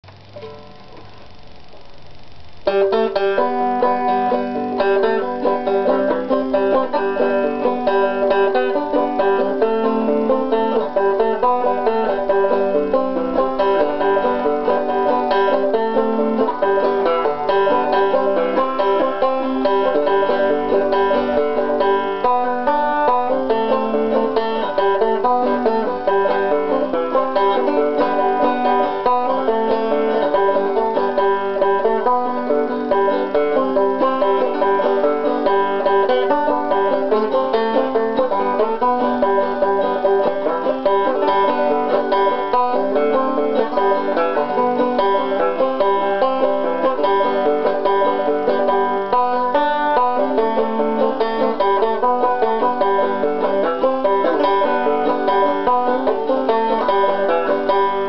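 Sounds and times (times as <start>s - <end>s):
fingerstyle banjo folk tune: 0.0s - 58.0s.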